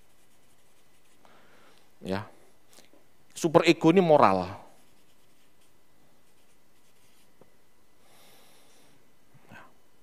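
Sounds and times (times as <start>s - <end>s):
marker pen scratching on paper: 0.0s - 1.2s, 4.7s - 7.3s.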